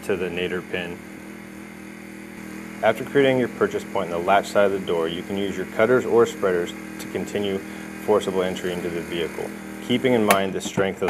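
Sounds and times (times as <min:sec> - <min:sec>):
man speaking: 0:00.0 - 0:01.0, 0:02.8 - 0:11.0
steady low hum: 0:00.0 - 0:11.0.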